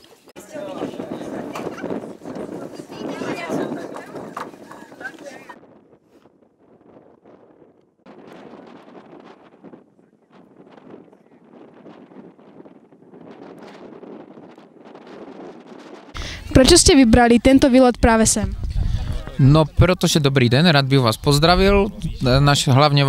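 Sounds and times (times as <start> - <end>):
chatter of many people: 0.0 - 5.6, 16.2 - 23.0
faint indistinct voices: 0.0 - 5.6, 18.1 - 20.0
wind on microphone: 0.4 - 23.0.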